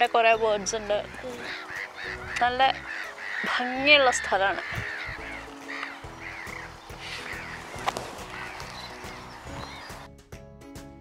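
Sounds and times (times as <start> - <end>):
geese honking: 0.2 - 10.1.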